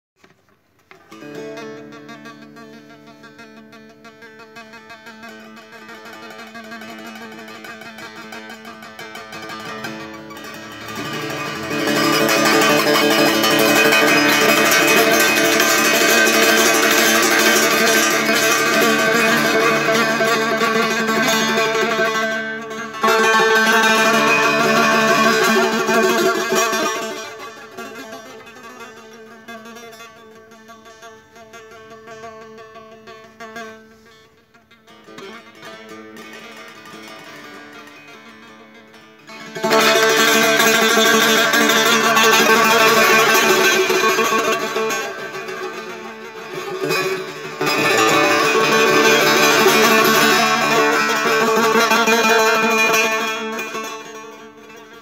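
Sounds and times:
plucked lute solo: 0.2s - 55.0s.

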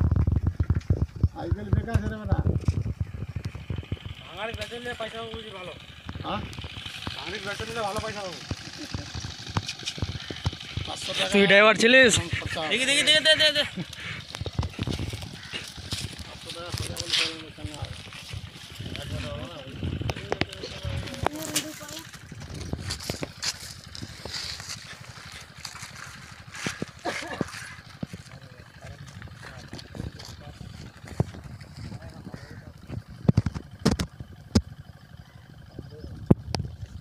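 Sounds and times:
men talking in background: 4.2s - 9.0s, 10.8s - 14.3s, 15.1s - 22.0s, 27.1s - 33.0s.

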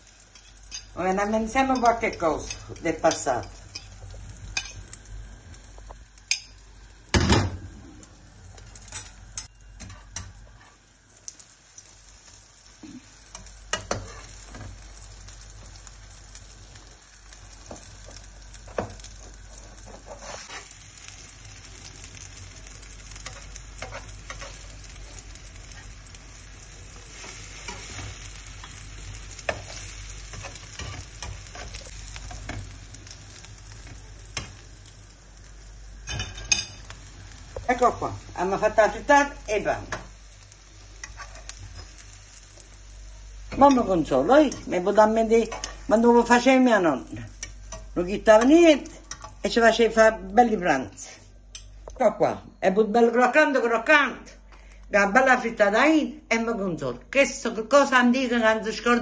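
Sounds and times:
food sizzling in hot oil: 0.0s - 52.1s.

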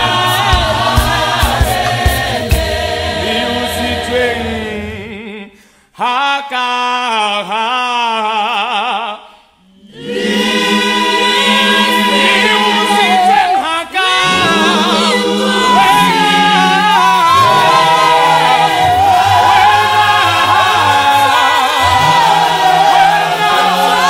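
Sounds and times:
choir singing a cappella: 0.0s - 6.1s, 7.1s - 24.0s.

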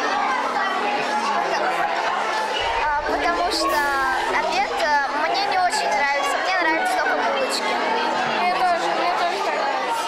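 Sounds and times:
chatter of many children: 0.0s - 10.0s
girl talking: 2.6s - 7.6s.

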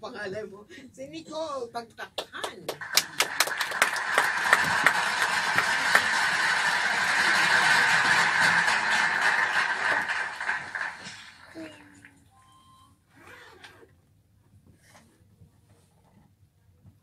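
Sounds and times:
applause: 2.2s - 12.2s.

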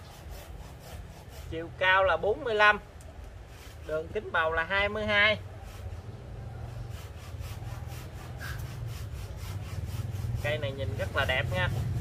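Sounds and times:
fast even rasping: 5.4s - 12.0s.

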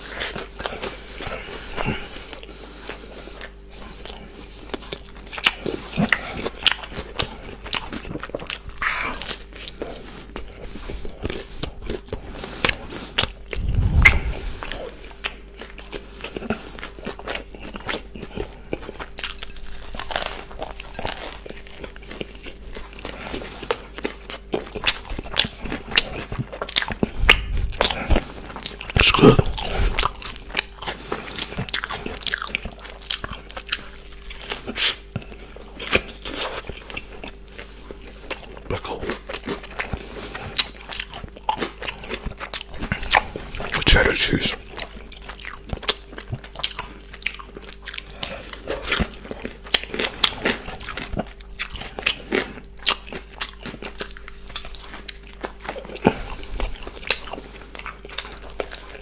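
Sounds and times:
mouth chewing crunchy food: 0.0s - 59.0s
wet mouth clicks: 13.5s - 15.3s.

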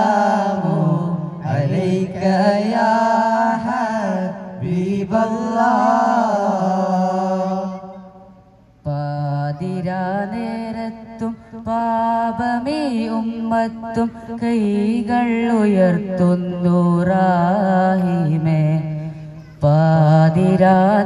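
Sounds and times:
voices singing a chant: 0.0s - 21.0s.

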